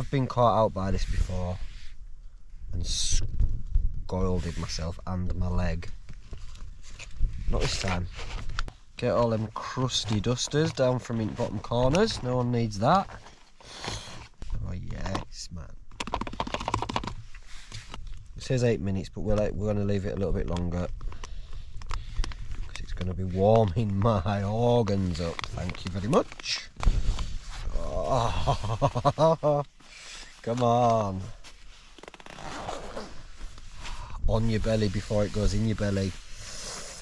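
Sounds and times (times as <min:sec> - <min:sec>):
jacket zip closing: 0:13.6 - 0:14.4, 0:31.8 - 0:34.1, 0:36.2 - 0:37.0
crinkly pouch clicks and crackles: 0:14.8 - 0:18.3, 0:19.2 - 0:33.6
pouch rustling: 0:21.0 - 0:37.0.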